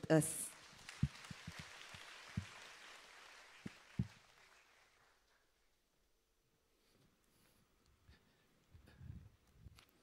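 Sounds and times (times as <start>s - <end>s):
congregation applauding: 0.4s - 5.7s.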